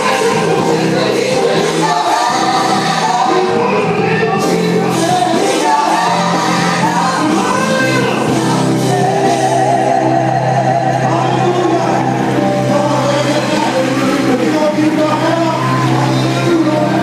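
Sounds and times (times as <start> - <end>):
band with electric bass: 0.0 - 17.0
male vocal group singing: 0.0 - 17.0.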